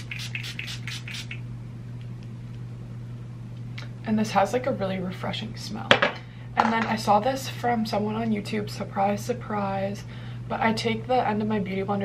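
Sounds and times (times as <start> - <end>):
spray bottle hissing: 0.0 - 1.4.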